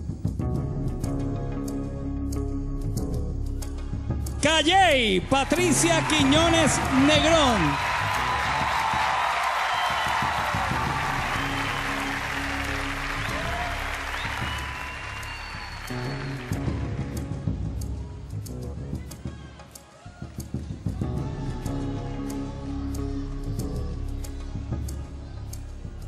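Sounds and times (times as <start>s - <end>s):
stage music: 4.3s - 19.2s
audience applause: 5.4s - 17.2s.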